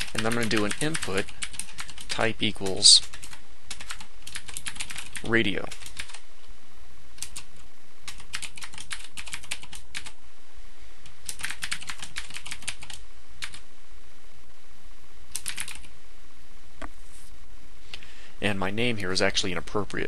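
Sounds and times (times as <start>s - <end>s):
computer keyboard typing: 0.0s - 6.2s, 7.2s - 10.2s, 11.2s - 13.6s, 15.3s - 15.9s.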